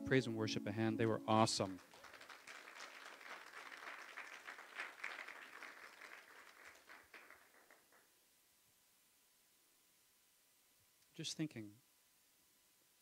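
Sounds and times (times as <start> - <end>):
faint applause: 1.4 - 8.1.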